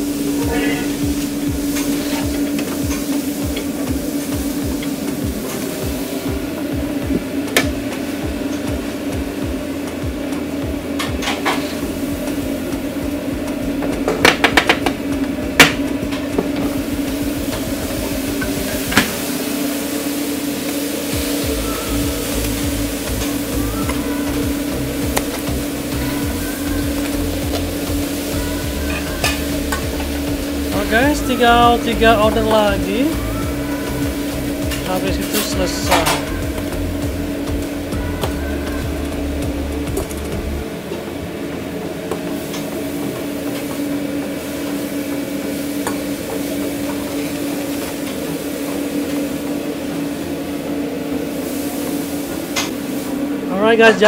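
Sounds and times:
food sizzling: 0.0s - 54.0s
steady machine hum: 0.0s - 54.0s
metal utensils clanking: 34.0s - 39.2s.

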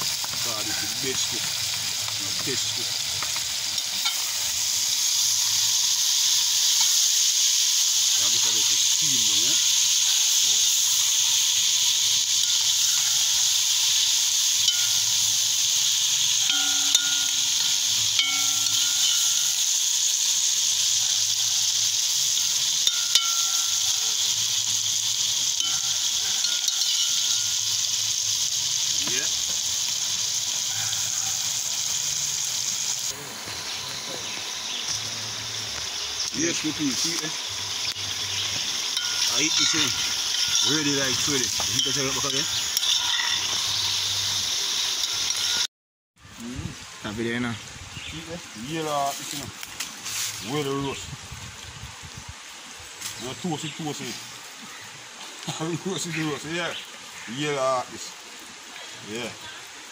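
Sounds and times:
vegetables sizzling in oil: 0.0s - 59.9s.

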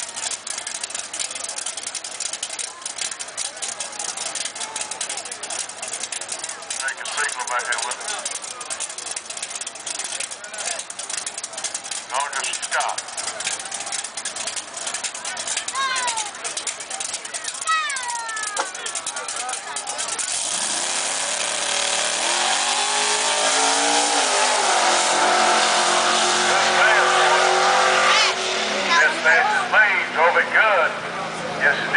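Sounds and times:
car engine revving: 0.0s - 17.7s, 18.4s - 31.9s
voices: 0.0s - 21.4s, 23.2s - 31.9s.

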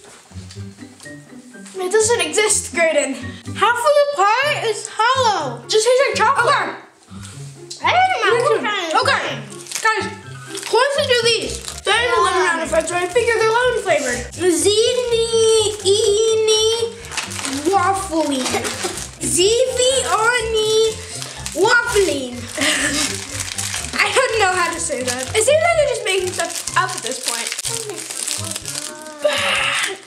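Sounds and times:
children talking and exclaiming: 1.8s - 6.9s, 7.7s - 30.0s
background music with bass line: 5.2s - 27.0s.

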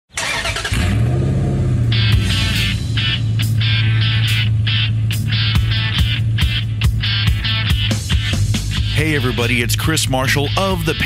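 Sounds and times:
car engine starting and running: 0.1s - 11.0s.

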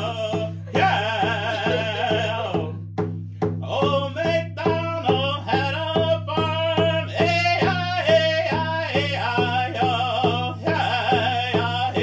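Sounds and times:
frame drum struck with beater: 0.0s - 12.0s.

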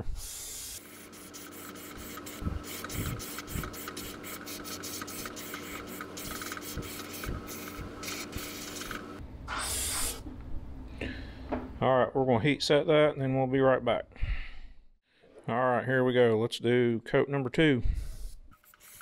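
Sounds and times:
airbrush spraying in short hisses: 0.0s - 10.2s, 18.0s - 19.0s
steady low hum: 0.0s - 11.8s.

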